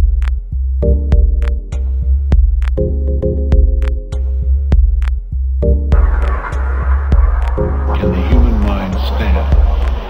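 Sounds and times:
pulsing bass line: 0.0s - 10.0s
sliding synth sound: 6.0s - 9.8s.

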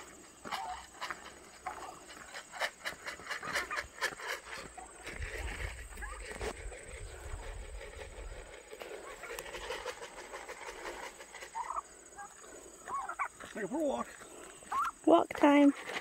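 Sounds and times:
footsteps on gravel: 0.0s - 6.6s, 8.7s - 16.0s
turkeys calling: 0.0s - 15.1s.

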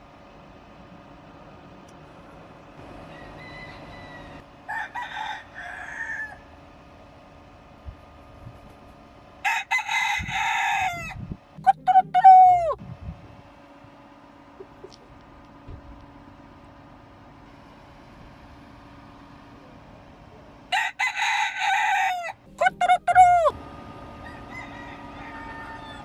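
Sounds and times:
rooster crowing: 2.9s - 6.6s, 9.4s - 11.2s, 20.7s - 26.0s.

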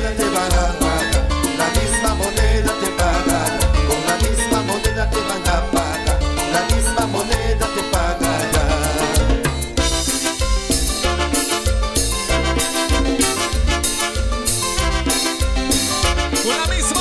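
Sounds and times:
salsa orchestra playing: 0.0s - 17.0s.

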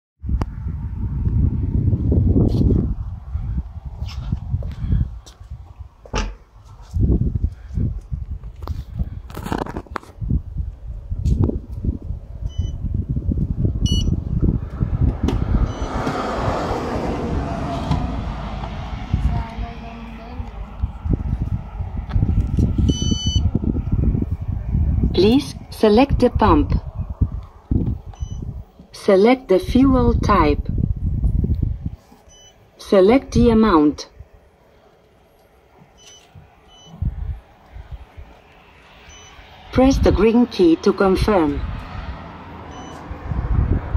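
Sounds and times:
low rumble: 0.2s - 9.3s, 10.2s - 28.7s, 41.4s - 43.9s
touchscreen beeps: 12.5s - 12.8s, 13.9s - 14.2s, 22.9s - 23.4s, 28.2s - 28.4s, 32.3s - 32.6s, 36.0s - 37.0s, 39.1s - 39.4s, 42.7s - 43.0s
short high key-press beeps: 13.9s - 14.1s.

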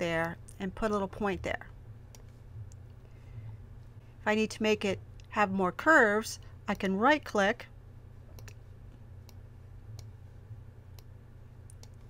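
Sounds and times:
faint low hum: 0.0s - 12.0s
computer mouse clicking: 8.3s - 10.2s, 10.9s - 12.0s.

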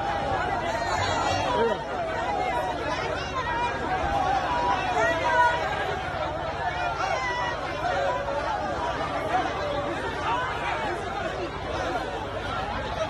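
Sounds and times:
crowd talking: 0.0s - 13.0s.

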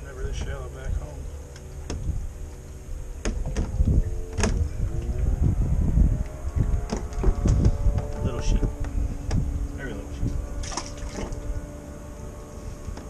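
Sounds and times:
low rumble: 0.0s - 13.0s
sharp clicks and knocks: 3.2s - 4.6s, 6.2s - 9.5s.

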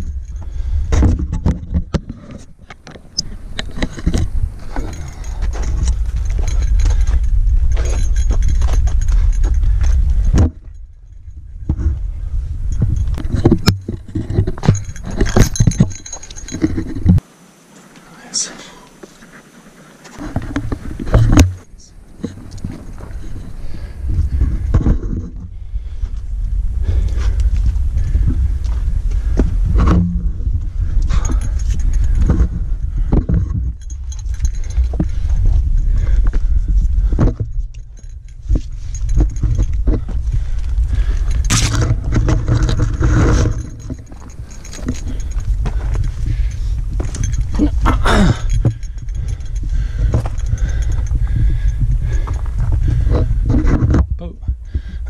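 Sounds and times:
scrapes clicks and rustles: 12.7s - 17.2s, 31.0s - 54.2s.

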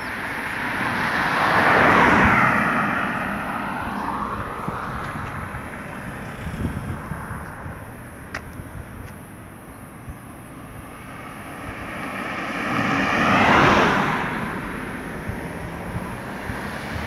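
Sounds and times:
car passing by: 0.0s - 7.6s, 10.7s - 17.0s
quieter vehicle passing: 0.0s - 8.2s, 8.8s - 17.0s.

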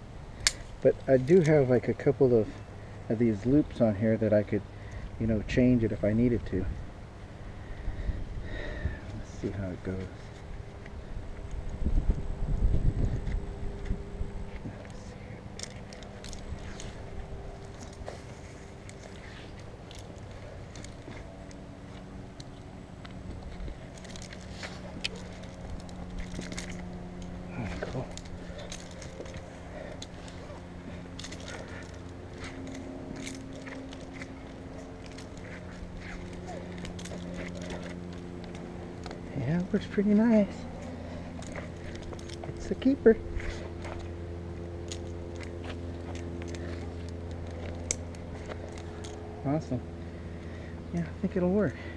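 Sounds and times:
steady low hum: 0.0s - 51.9s
clicks and scrapes of rope: 13.1s - 49.8s.

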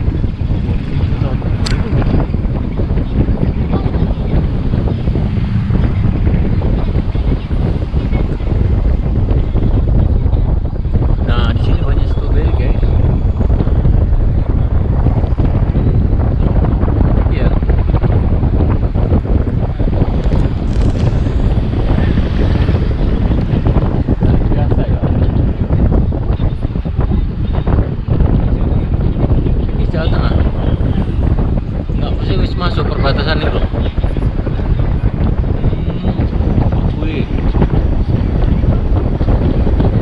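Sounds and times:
road noise rumble: 0.0s - 40.0s
wind buffeting microphone: 0.0s - 40.0s.

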